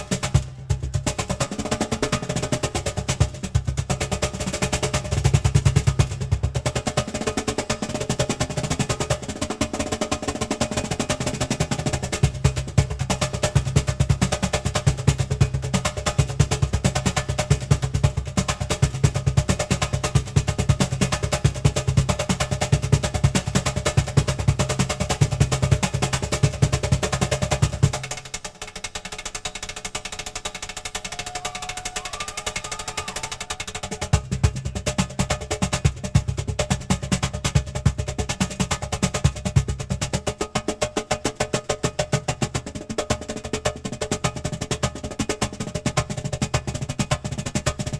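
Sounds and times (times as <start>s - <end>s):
cajon played by hand: 0.0s - 47.9s.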